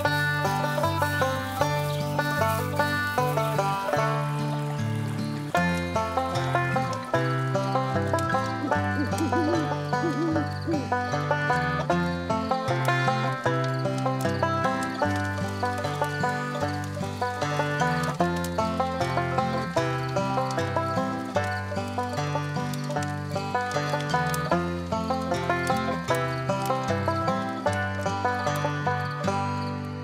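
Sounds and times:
bluegrass banjo music: 0.0s - 30.0s.

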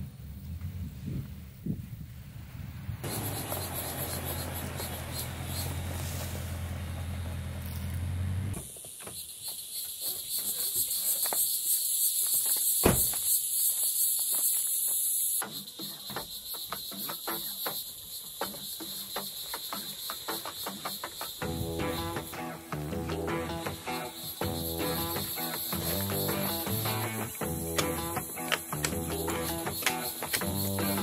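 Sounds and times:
high-pitched insect chorus: 3.0s - 6.6s, 8.5s - 31.0s
truck engine idling: 3.0s - 8.6s
sharp thump: 12.8s - 13.2s.

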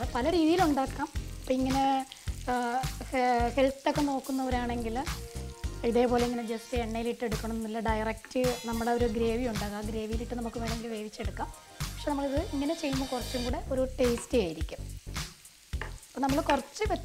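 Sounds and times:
person talking: 0.0s - 5.1s, 5.8s - 14.8s, 16.2s - 17.0s
potatoes sizzling in oil: 0.0s - 17.0s.

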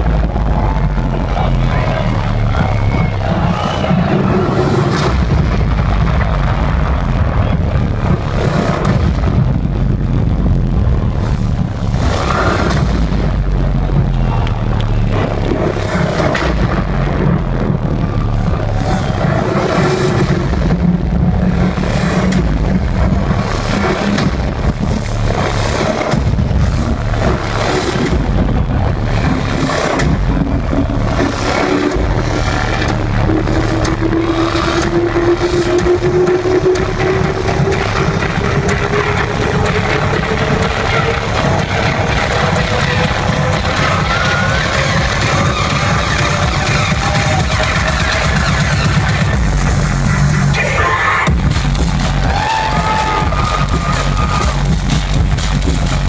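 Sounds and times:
synth riser climbing in pitch: 0.0s - 50.6s
loud dubstep over sound system: 0.0s - 56.0s
pulsing beat: 0.0s - 56.0s.

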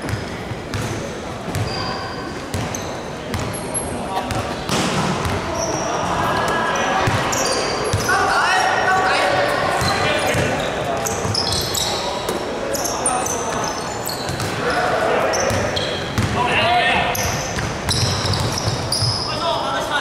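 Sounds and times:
ball bouncing on hardwood court: 0.0s - 1.8s, 2.5s - 3.5s, 9.8s - 10.6s, 15.5s - 16.4s, 17.2s - 19.2s
sneaker squeaks: 0.0s - 8.8s, 9.7s - 16.4s, 17.1s - 19.6s
players calling out: 2.7s - 20.0s.

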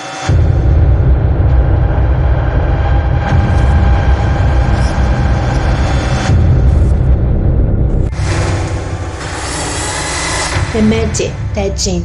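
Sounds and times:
deep loud rumbling: 0.3s - 12.0s.

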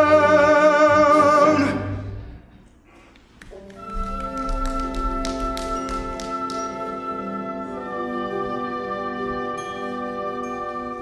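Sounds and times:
orchestra playing held chords: 3.7s - 11.0s.

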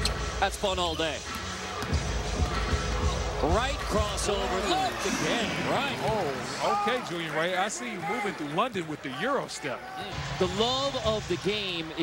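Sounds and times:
background music: 0.0s - 12.0s
crowd noise: 0.0s - 12.0s.

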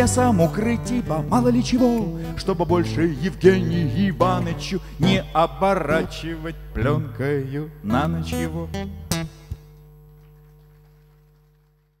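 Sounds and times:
acoustic guitar chord ringing: 0.0s - 10.3s.

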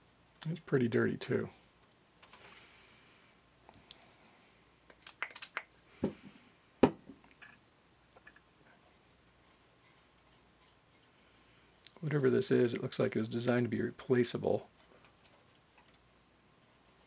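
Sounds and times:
soft rubbing: 8.6s - 13.0s.

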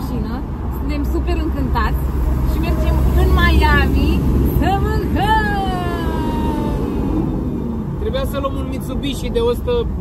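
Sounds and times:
road rumble: 0.0s - 10.0s.

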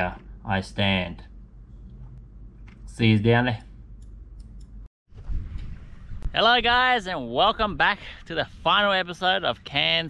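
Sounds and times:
low rumbling noise: 5.1s - 8.8s.

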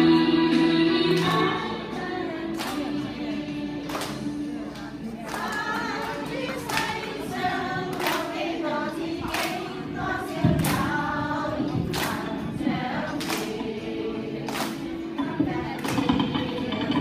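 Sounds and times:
women singing together: 0.0s - 17.0s
hand claps: 2.5s - 3.0s, 3.8s - 4.3s, 5.3s - 7.2s, 7.9s - 8.3s, 9.2s - 9.7s, 10.5s - 11.0s, 11.8s - 12.4s, 13.2s - 13.7s, 14.4s - 17.0s.

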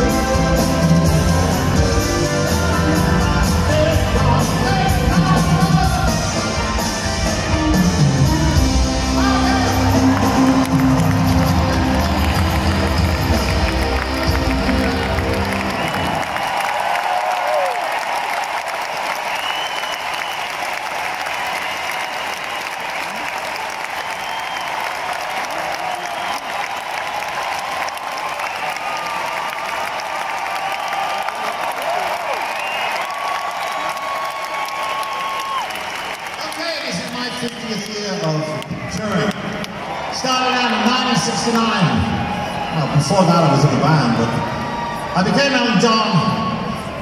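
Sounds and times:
crowd applauding and cheering: 0.0s - 47.0s.

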